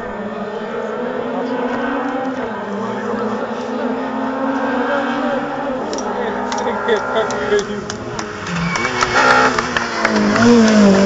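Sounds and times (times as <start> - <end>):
race car engine revving: 0.0 - 11.0.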